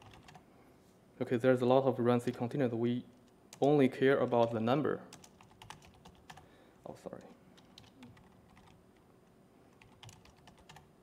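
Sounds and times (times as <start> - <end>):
faint laptop keyboard typing: 0.0 - 0.4, 2.2 - 11.0.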